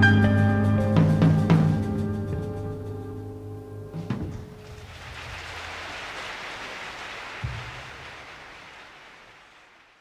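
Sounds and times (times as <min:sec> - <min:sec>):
low thump: 0:04.0 - 0:04.8, 0:07.4 - 0:07.8
audience applauding: 0:04.6 - 0:10.0.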